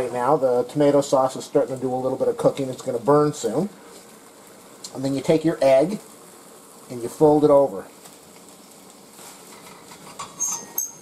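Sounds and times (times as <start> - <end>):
omelette sizzling in a pan: 0.0 - 11.0
spatula scraping a pan: 9.2 - 11.0.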